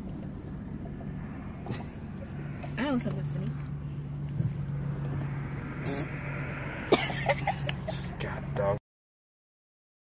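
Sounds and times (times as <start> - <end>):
car cabin drone: 0.0 - 8.8.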